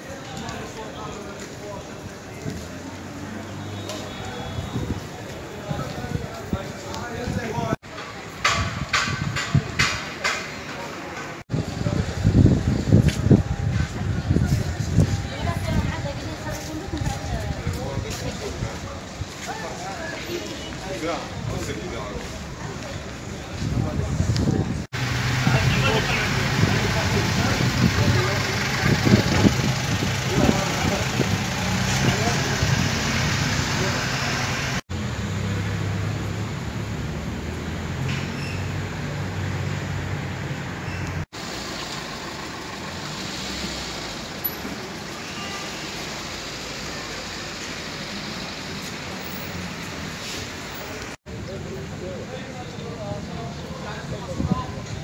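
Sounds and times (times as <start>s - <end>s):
indistinct voices: 0.0s - 34.8s
car traffic hum: 18.6s - 54.9s.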